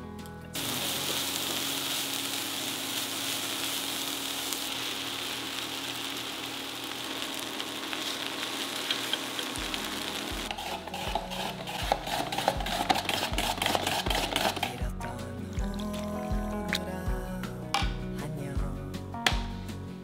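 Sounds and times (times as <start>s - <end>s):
vegetables sizzling in frying pan: 0.6s - 14.8s.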